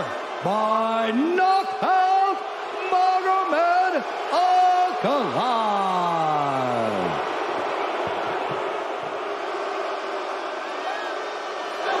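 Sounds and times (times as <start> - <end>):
arena crowd cheering: 0.0 - 12.0.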